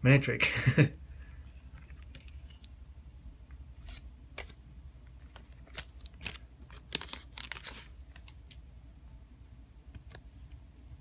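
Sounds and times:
foil wrapper crinkling and tearing: 5.4 - 8.3.

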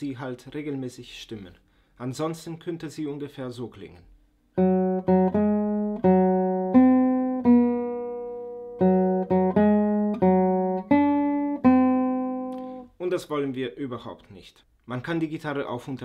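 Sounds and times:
out of tune nylon guitar: 4.6 - 12.9.

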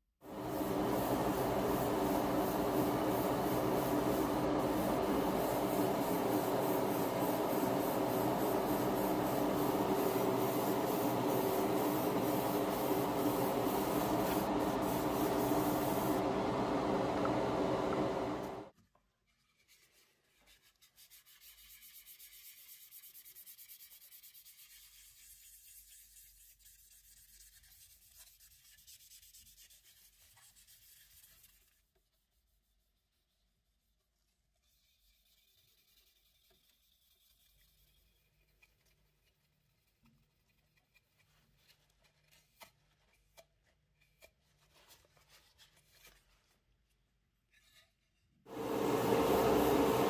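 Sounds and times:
airbrush spraying hiss: 0.3 - 16.3, 48.5 - 50.0
airbrush compressor humming: 0.3 - 18.7, 48.5 - 50.0
sandpaper rubbing on plastic: 0.4 - 16.2, 19.5 - 43.3.

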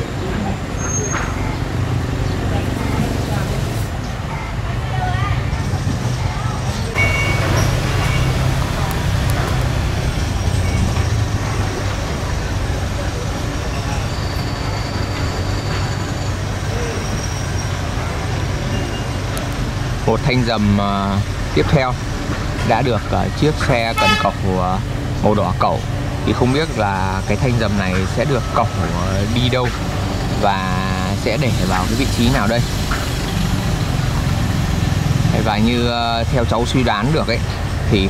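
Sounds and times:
diesel machinery humming: 0.0 - 38.0.

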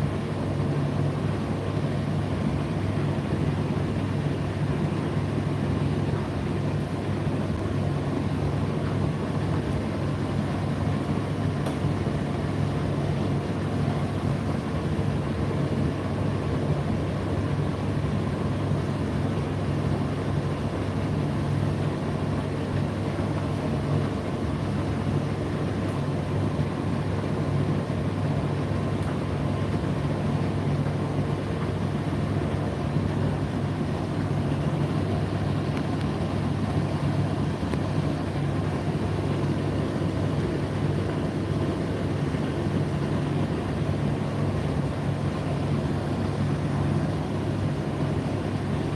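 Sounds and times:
tumble dryer humming: 0.0 - 48.9.

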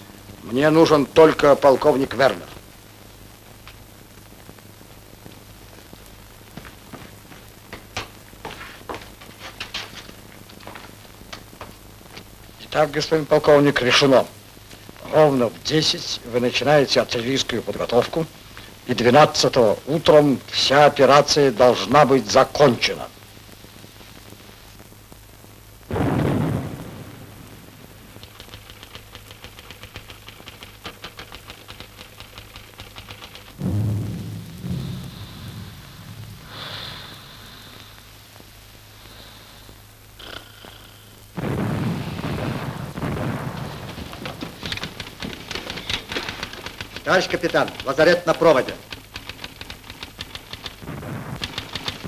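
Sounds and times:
artillery shell explosions: 25.9 - 30.9, 33.5 - 37.8, 41.4 - 49.1, 50.4 - 52.0
faint fast ticking: 27.8 - 33.6, 43.3 - 52.0.

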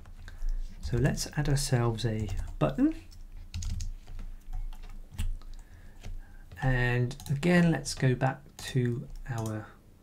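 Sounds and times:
typing on computer keyboard: 2.2 - 6.2.

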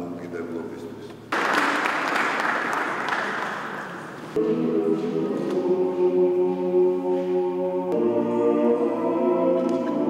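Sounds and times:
man speaking over loudspeaker: 0.0 - 1.1
audience applause: 1.3 - 4.1.

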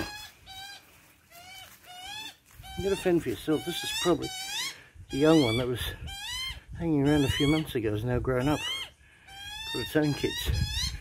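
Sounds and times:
magpie begging calls: 0.0 - 7.8, 8.4 - 11.0.

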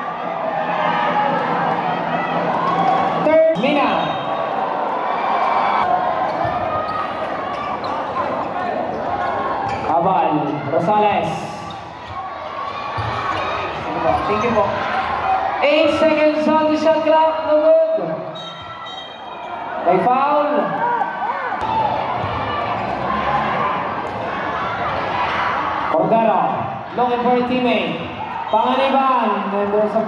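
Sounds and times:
crowd shouting and chattering: 0.0 - 30.0.

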